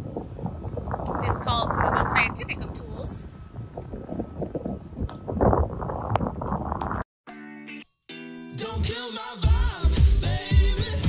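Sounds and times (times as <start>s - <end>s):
wind buffeting microphone: 0.0s - 7.0s.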